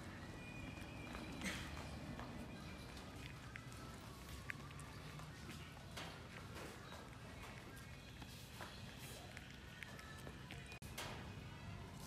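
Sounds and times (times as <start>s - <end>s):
puppy eating: 0.0s - 12.0s.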